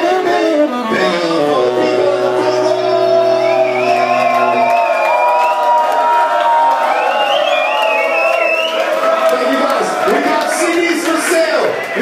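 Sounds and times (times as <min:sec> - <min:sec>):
band chord ringing out: 0:01.2 - 0:05.4
audience cheering and whooping: 0:03.0 - 0:12.0.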